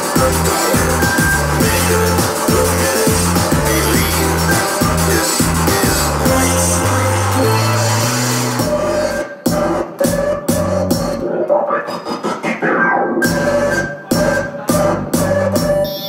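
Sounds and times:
electronic music with stuttering beat: 0.0 - 16.0.

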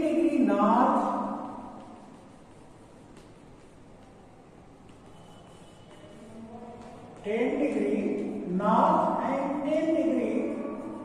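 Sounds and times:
low room noise: 0.0 - 11.0
chalk tapping and scraping on blackboard: 0.7 - 8.6.

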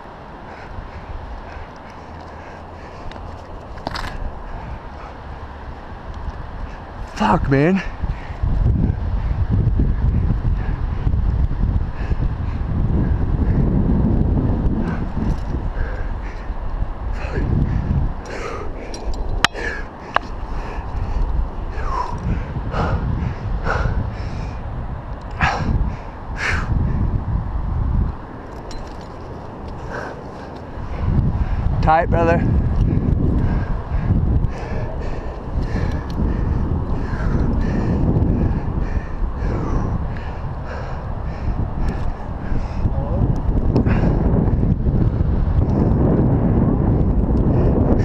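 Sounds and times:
wind buffeting microphone: 0.0 - 48.0
person breathing: 15.7 - 24.6, 32.8 - 42.9.

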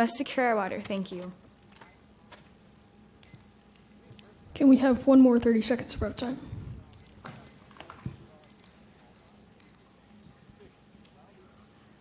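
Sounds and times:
digital timer beeping: 3.2 - 4.4, 7.0 - 7.7, 8.4 - 10.0.

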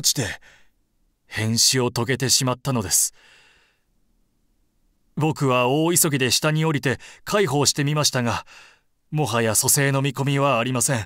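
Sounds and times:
person breathing softly: 0.4 - 0.8, 3.1 - 3.9, 7.0 - 7.3, 8.4 - 8.9.

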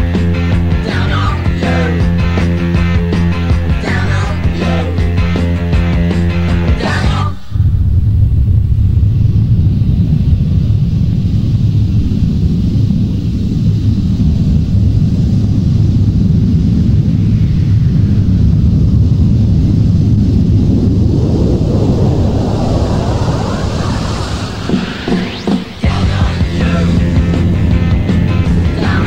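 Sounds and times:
loud low rumbling noise: 0.0 - 29.0.

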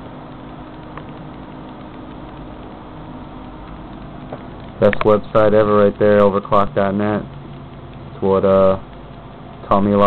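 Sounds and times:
computer cooling fans whirring: 0.0 - 10.0.

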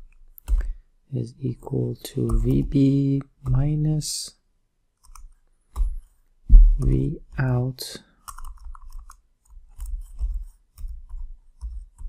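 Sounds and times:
typing on computer keyboard: 0.3 - 0.8, 5.0 - 6.1, 8.2 - 12.0.

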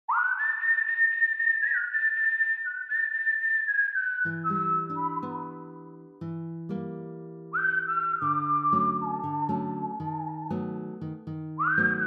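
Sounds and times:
person whistling a slow melody: 0.1 - 6.0, 7.5 - 10.8, 11.5 - 12.0.

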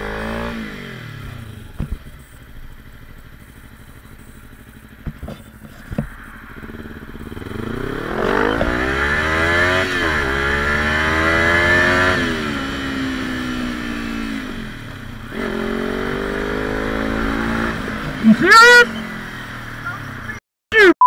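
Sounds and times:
motorcycle engine accelerating: 0.0 - 20.4.

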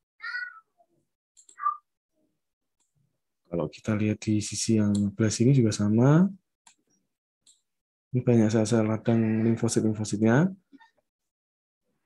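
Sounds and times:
high-pitched cries: 0.2 - 0.8.

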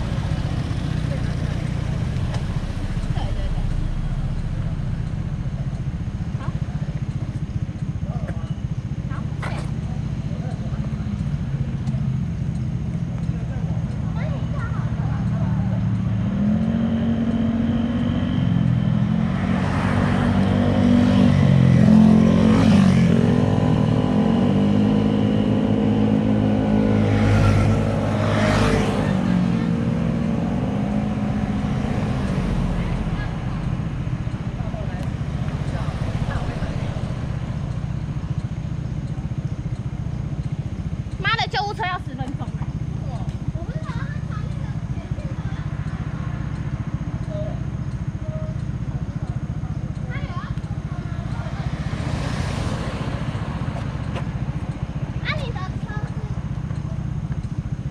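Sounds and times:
passing traffic engine drone: 0.0 - 57.9.

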